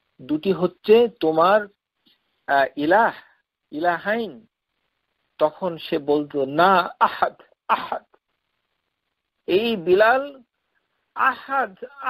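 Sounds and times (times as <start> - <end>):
man speaking over phone line: 9.5 - 10.4, 11.2 - 12.0.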